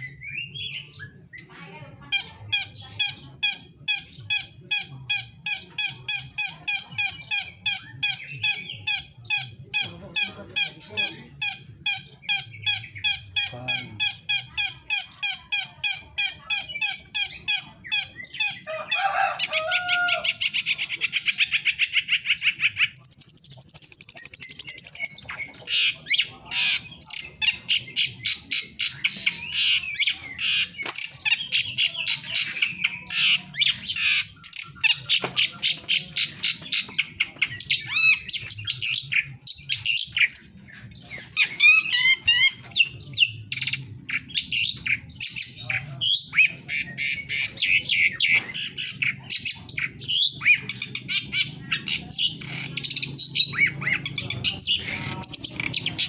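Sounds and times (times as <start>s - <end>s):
songbird singing rapid chattering: 0.0s - 18.9s, 19.5s - 56.0s.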